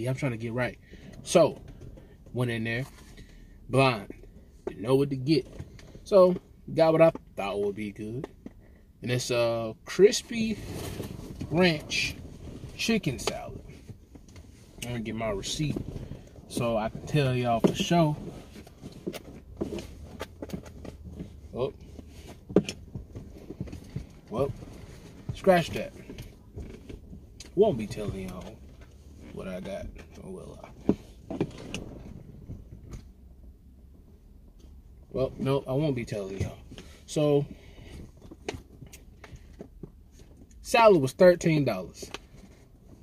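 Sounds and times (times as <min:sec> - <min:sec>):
low steady cabin hum: 0:00.0 - 0:43.0
hand rummaging clicks and rustles: 0:10.4 - 0:33.1.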